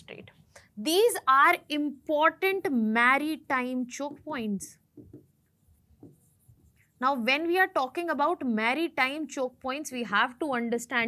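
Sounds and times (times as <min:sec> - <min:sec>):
stylus tapping and scratching on glass: 0:04.9 - 0:06.9.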